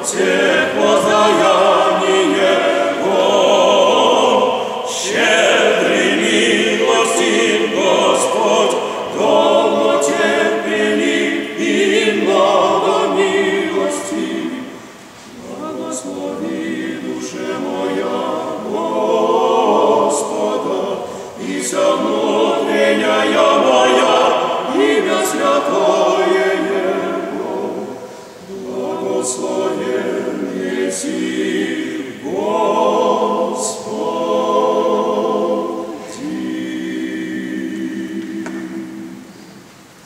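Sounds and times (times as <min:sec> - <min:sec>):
male vocal quartet chanting a cappella: 0:00.0 - 0:39.5.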